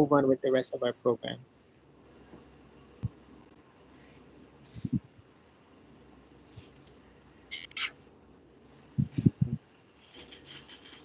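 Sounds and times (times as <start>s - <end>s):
rustling and scraping: 4.6s - 5.0s.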